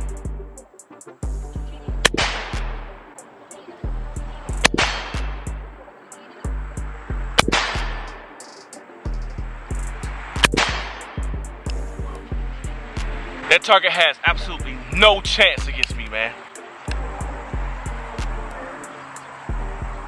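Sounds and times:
music beat with deep bass: 0.0s - 13.4s, 14.3s - 20.0s.

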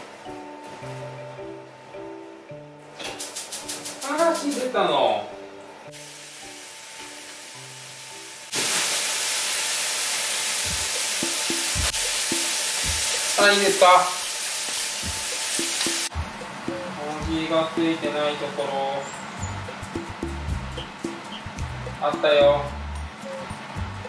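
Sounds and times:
soft background music: 0.0s - 8.6s, 10.6s - 24.0s
loud steady hiss: 3.0s - 5.0s, 5.8s - 24.0s
low thumps: 16.1s - 16.5s.

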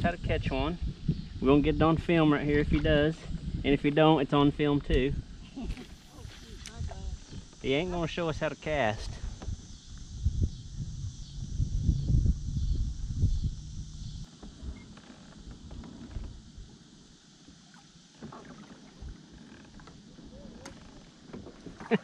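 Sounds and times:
kayak gear rumbling and knocking: 4.9s - 7.7s, 12.4s - 16.8s, 18.2s - 22.0s.

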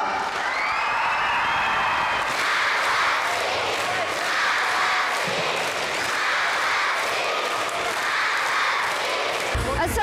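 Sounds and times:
audience applauding: 0.0s - 9.7s
cheering: 0.0s - 9.8s.

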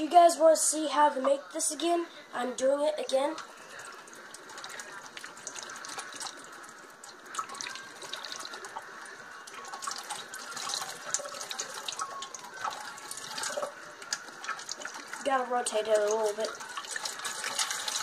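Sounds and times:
water splashing in metal sink: 3.4s - 18.0s.

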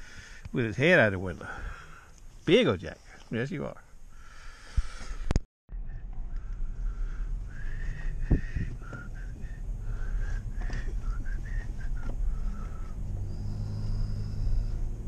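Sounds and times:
truck road and engine rumble: 5.7s - 15.0s.

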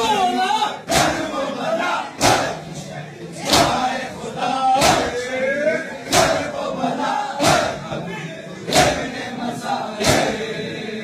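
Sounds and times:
crowd shouting: 0.0s - 11.0s.

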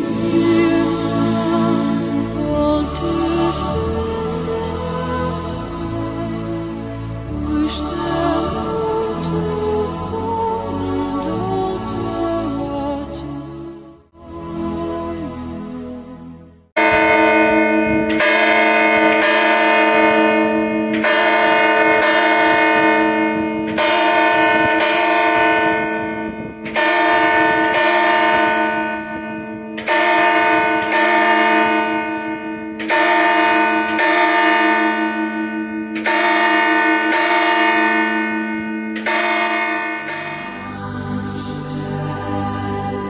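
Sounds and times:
church bells ringing: 0.0s - 13.5s, 16.8s - 43.0s.

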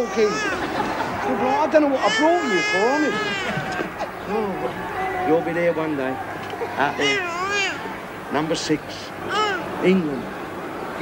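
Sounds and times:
infant crying: 0.0s - 0.7s, 1.4s - 3.9s, 6.8s - 7.9s, 9.3s - 9.7s.

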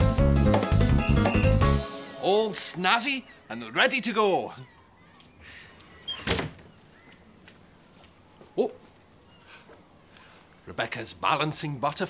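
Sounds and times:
cupboard door squeak: 6.0s - 6.8s.

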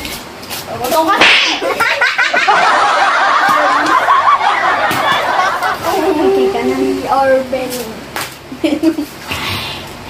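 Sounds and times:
children giggling: 1.4s - 6.8s, 8.5s - 9.2s.

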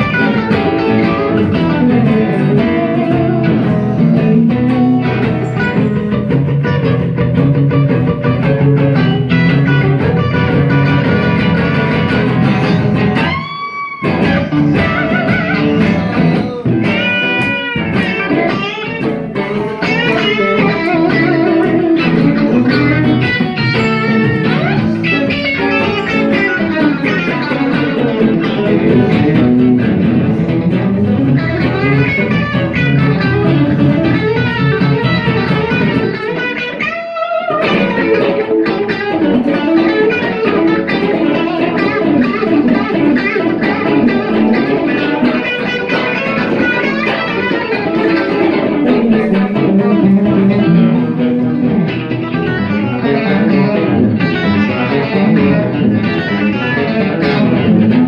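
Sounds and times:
electric guitars through amplifiers: 0.0s - 58.0s.

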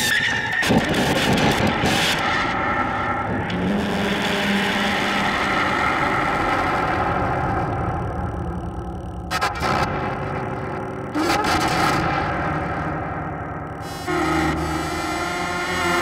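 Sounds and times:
grinding noise drone: 0.7s - 16.0s
low hum: 5.2s - 16.0s
steady synth tones: 7.0s - 16.0s.

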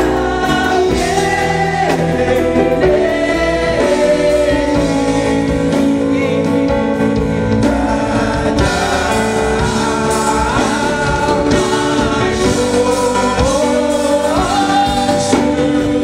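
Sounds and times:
gospel choir singing: 0.0s - 16.0s
keyboard: 0.0s - 16.0s.

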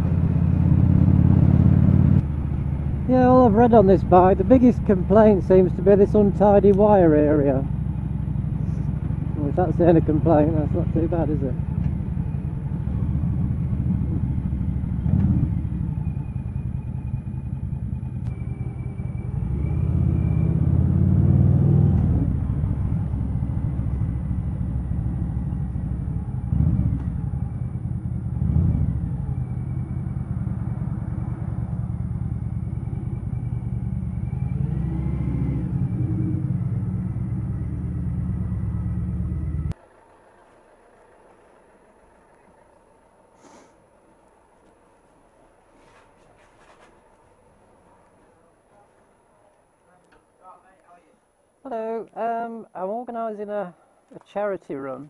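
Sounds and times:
motorcycle engine running: 0.0s - 20.8s, 21.9s - 43.3s
road noise: 0.0s - 55.0s.

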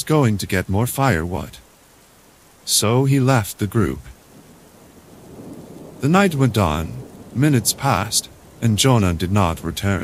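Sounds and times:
rain falling: 0.0s - 10.0s
low rumble of thunder: 3.6s - 10.0s.

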